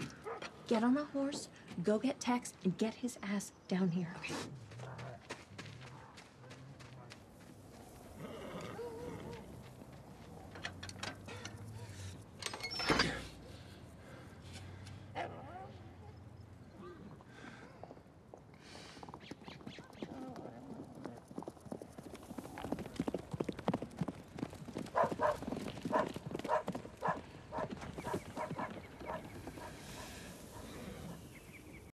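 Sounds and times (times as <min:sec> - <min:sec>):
horse galloping on dirt: 0:04.5 - 0:11.8, 0:17.8 - 0:30.7.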